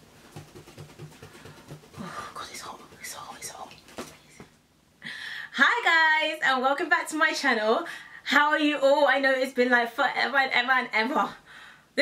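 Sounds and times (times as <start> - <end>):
woman whispering: 2.0 - 3.8.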